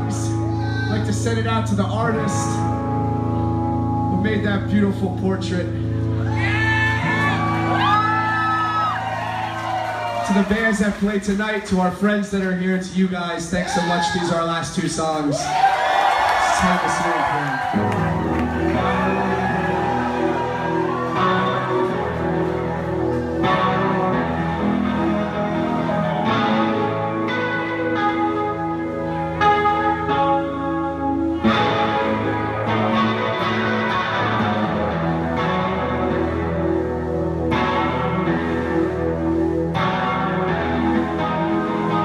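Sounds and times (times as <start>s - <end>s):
electric guitars and bass chords: 0.0s - 42.0s.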